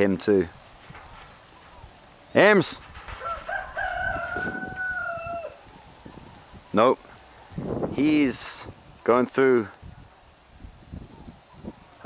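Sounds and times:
rooster crowing: 3.2s - 5.6s.

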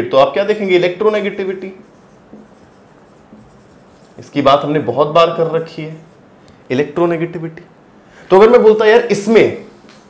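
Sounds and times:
marker writing on whiteboard: 0.7s - 7.0s.

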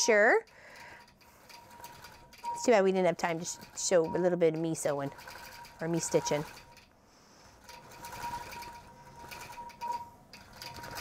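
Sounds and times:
quilting machine needle strokes: 0.1s - 6.9s, 7.5s - 11.0s.

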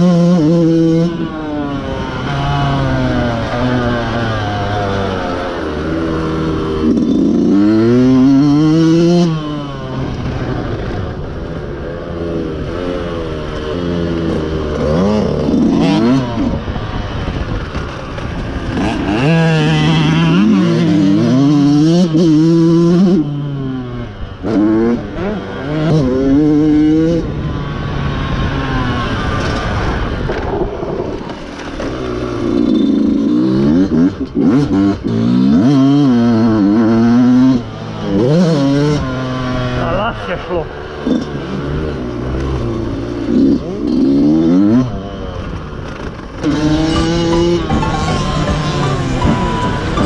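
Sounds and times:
dirt bike engine revving: 0.0s - 50.0s.

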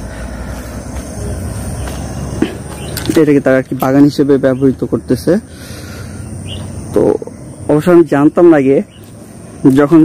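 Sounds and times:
man talking: 3.0s - 5.5s, 6.8s - 8.9s, 9.6s - 10.0s.

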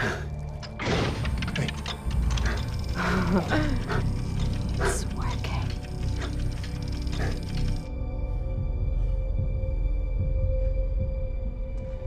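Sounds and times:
dark film score music: 0.0s - 12.0s
low drone: 0.0s - 12.0s.

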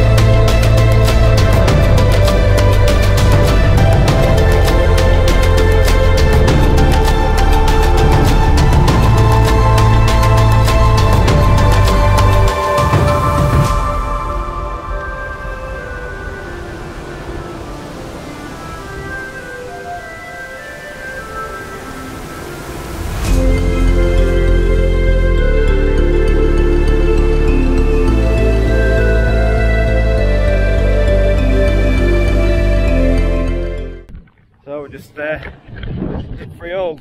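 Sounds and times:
deep bass: 0.0s - 14.8s, 23.3s - 34.1s
soft background music chords: 0.0s - 34.1s
man talking: 34.6s - 35.5s, 36.4s - 37.0s
wind on microphone: 35.4s - 37.0s.

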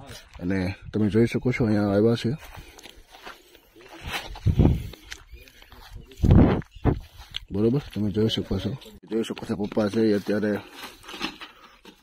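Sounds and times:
man's voice: 0.0s - 2.5s, 7.4s - 10.7s
footsteps on dirt and grass: 1.8s - 11.1s.

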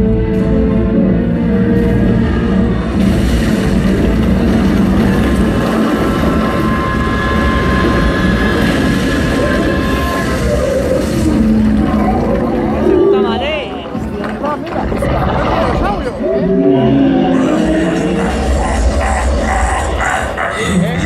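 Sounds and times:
rumbling destruction effect: 0.0s - 21.0s.

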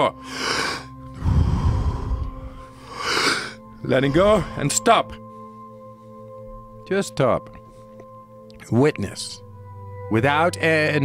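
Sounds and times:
soft ambient music: 0.0s - 11.0s
man breathing deeply: 0.2s - 4.6s
breath buffeting microphone: 0.3s - 3.6s.

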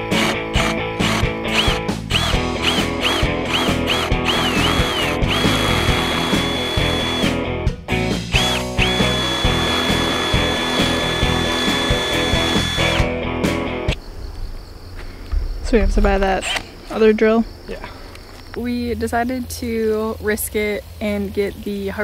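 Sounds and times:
cordless drill whine: 0.0s - 7.3s, 8.4s - 13.1s
guitar music: 0.0s - 14.0s.

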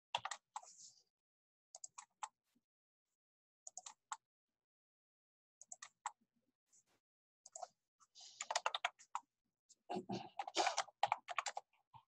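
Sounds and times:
keyboard typing: 0.1s - 0.7s, 3.7s - 4.2s, 8.4s - 9.3s, 10.3s - 11.7s.

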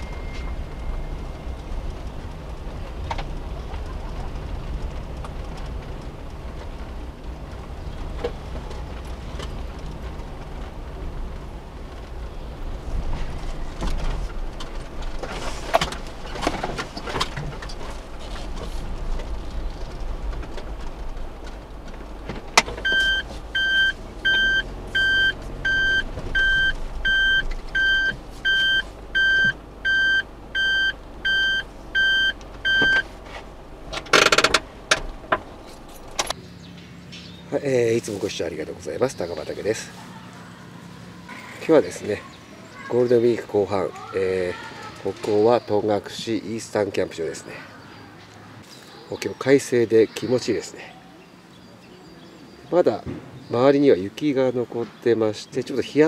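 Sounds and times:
reverse warning beeping: 0.0s - 2.0s, 22.8s - 33.1s
van engine and road rumble: 0.0s - 56.0s.

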